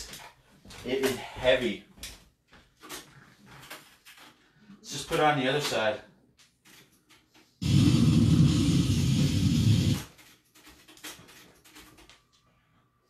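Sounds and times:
distorted death metal music: 0:07.6 - 0:10.0.

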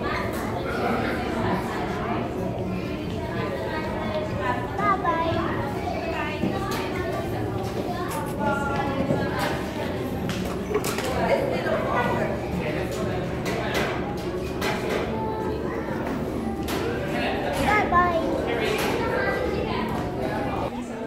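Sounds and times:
indistinct chatter: 0:00.0 - 0:21.0
child's high voice: 0:17.6 - 0:18.4.

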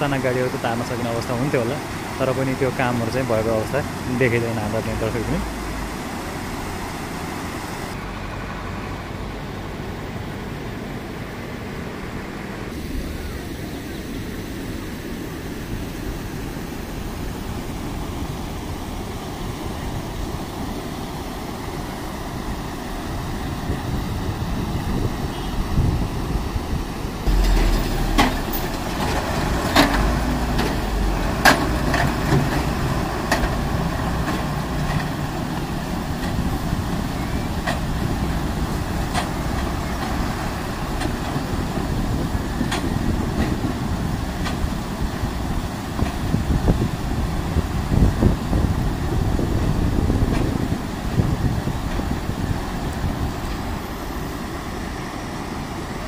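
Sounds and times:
bus and truck engines: 0:00.0 - 0:56.0
floodwater rushing: 0:00.0 - 0:56.0.

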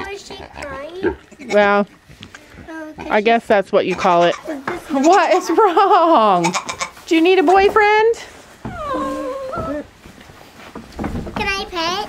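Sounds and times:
goat bleating: 0:03.9 - 0:05.6, 0:06.4 - 0:07.0.

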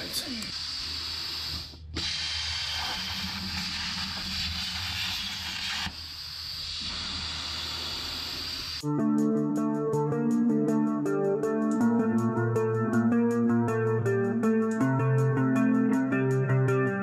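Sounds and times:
plasma torch hissing: 0:00.2 - 0:08.8.

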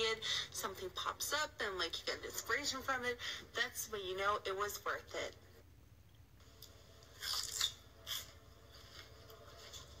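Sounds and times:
faint chewing: 0:06.5 - 0:10.0
crunchy bites into pepper: 0:07.2 - 0:08.3.

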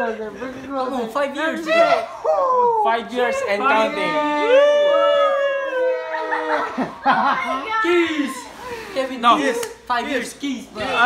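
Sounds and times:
men howling cheers: 0:03.6 - 0:06.9.

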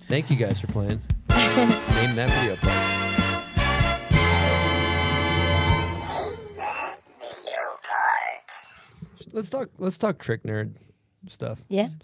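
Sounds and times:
person whispering: 0:06.0 - 0:08.9.

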